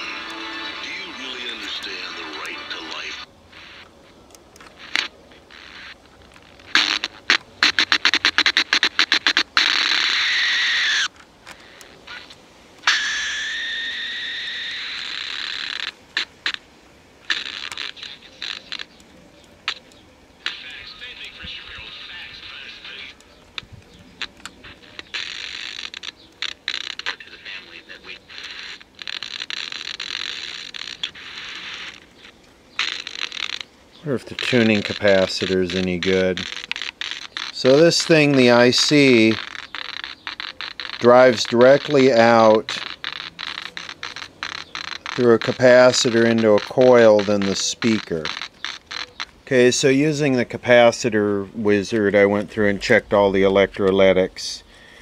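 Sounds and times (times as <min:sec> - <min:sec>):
broadcast speech: 0:00.0 - 0:03.3, 0:20.5 - 0:23.2, 0:34.0 - 0:36.5, 0:37.6 - 0:39.4, 0:41.0 - 0:42.8, 0:45.2 - 0:48.3
broadcast music: 0:00.0 - 0:03.8
radio whistles sliding in pitch: 0:00.0 - 0:03.9, 0:12.2 - 0:15.9, 0:34.4 - 0:49.3
radio static and crackle: 0:00.0 - 0:55.0.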